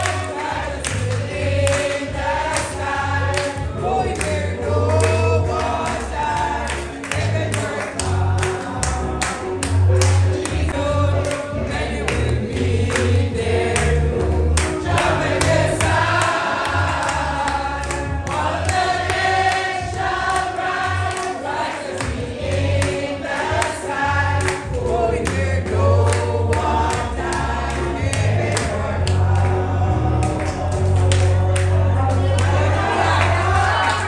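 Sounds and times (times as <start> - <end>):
bass line: 0.0 - 21.0, 24.1 - 33.8
choir singing gospel song: 0.0 - 34.0.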